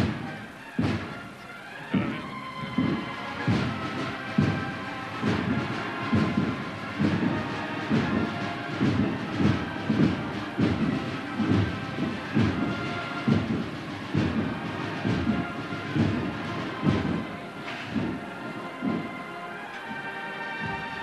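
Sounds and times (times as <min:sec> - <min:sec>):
heavy drum beats: 0:00.0 - 0:20.0
brass cornet notes: 0:00.0 - 0:21.0.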